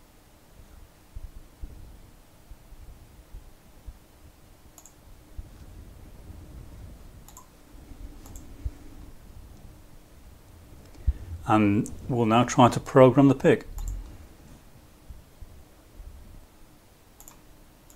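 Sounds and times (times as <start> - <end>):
faint steady hum: 0.0 - 17.9
computer mouse clicks: 4.7 - 5.0, 7.2 - 7.5, 8.2 - 8.6, 13.8 - 14.2, 17.2 - 17.9.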